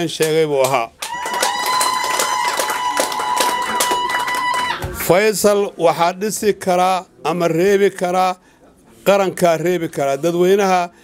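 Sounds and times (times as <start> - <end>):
hand clapping: 0.2 - 5.2.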